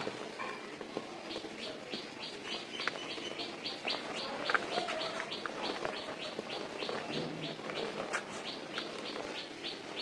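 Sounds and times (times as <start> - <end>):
bird chirping: 0.5 - 10.0.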